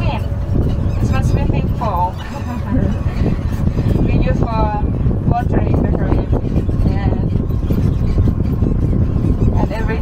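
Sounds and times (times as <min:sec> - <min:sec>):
tram rumbling on rough road: 0:00.0 - 0:10.0.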